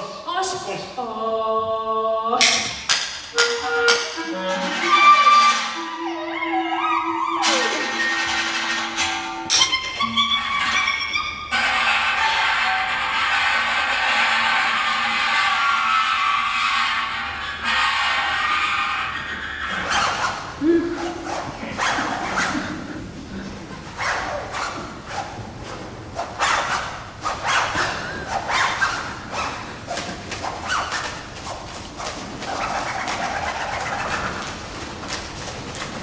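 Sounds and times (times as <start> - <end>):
clarinets played across a gong: 3.3 - 13.0
vocal pigeon-like cooing: 19.8 - 24.3.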